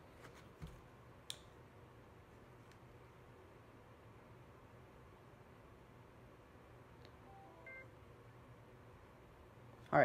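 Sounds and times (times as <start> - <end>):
electronic beeps: 7.2 - 7.9.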